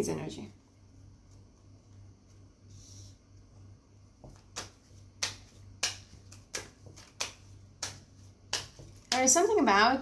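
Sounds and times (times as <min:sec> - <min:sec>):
cards snapping while shuffled: 0:04.2 - 0:09.4.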